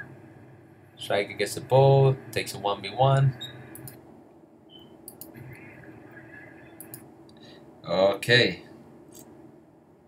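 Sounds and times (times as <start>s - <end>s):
faint room hum: 0.0s - 10.0s
soft computer mouse clicks: 3.7s - 4.0s, 5.0s - 5.4s, 6.8s - 7.4s.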